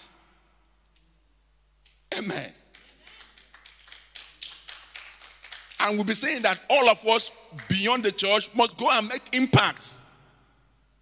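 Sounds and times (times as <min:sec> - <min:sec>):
scattered hand claps: 0:02.6 - 0:05.8.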